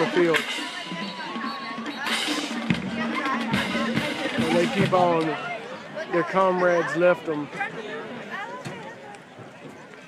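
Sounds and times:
band playing with drums: 0:00.0 - 0:06.6.

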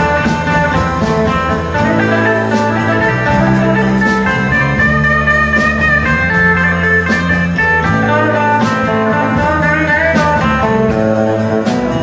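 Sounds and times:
drum kit: 0:00.0 - 0:12.0
electric bass: 0:00.0 - 0:12.0
electric guitar melody: 0:00.0 - 0:12.0.

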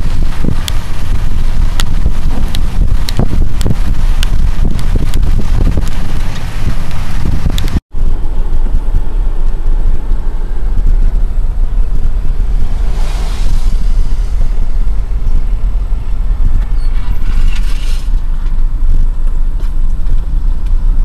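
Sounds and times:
low road rumble: 0:00.0 - 0:21.0
wind buffeting microphone: 0:00.0 - 0:21.0.

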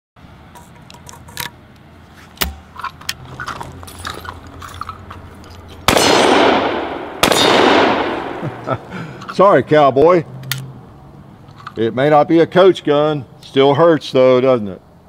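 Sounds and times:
shells loading into shotgun: 0:00.5 - 0:06.5, 0:10.4 - 0:10.7, 0:11.4 - 0:11.8
shotgun action closing: 0:02.4 - 0:03.2, 0:05.8 - 0:08.4, 0:10.4 - 0:10.7
loud echoing gunshots: 0:05.9 - 0:08.8.

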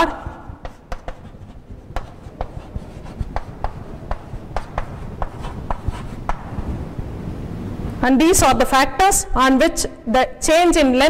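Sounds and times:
chalk stroke on blackboard: 0:00.0 - 0:06.6
low microphone rumble: 0:01.2 - 0:08.7.

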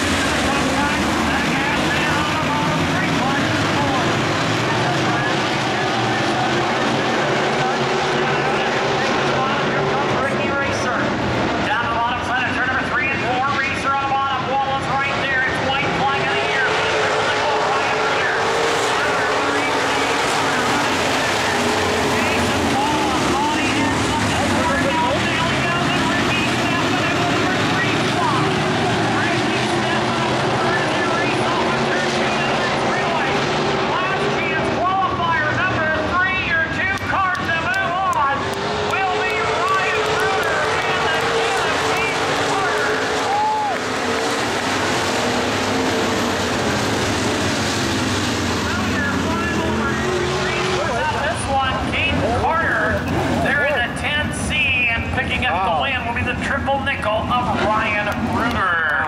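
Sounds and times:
race car engines droning: 0:00.0 - 0:59.0.

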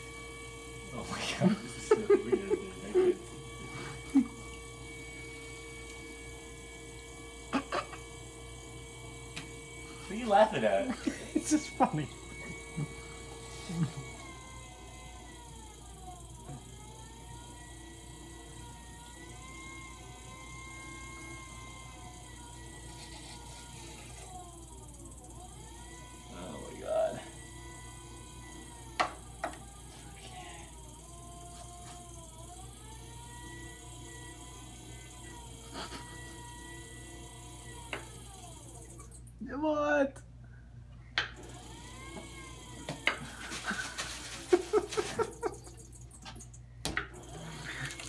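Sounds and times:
potter's wheel motor whining: 0:00.0 - 0:40.3, 0:40.9 - 0:48.0.

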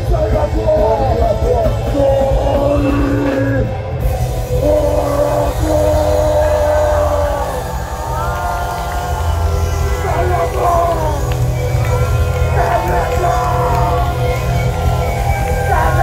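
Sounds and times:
live punk rock band: 0:00.0 - 0:16.0.

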